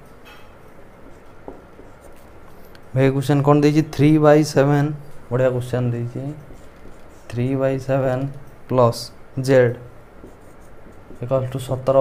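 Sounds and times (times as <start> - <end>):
marker writing on whiteboard: 1.0 - 2.7, 5.8 - 8.8, 9.7 - 12.0.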